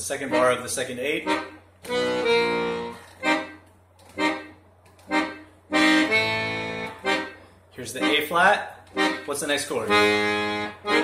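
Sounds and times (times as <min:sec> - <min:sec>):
accordion playing chords: 0:00.0 - 0:11.0.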